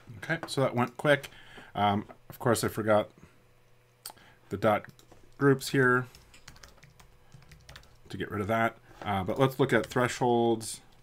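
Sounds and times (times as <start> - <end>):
computer keyboard typing: 6.1 - 8.0.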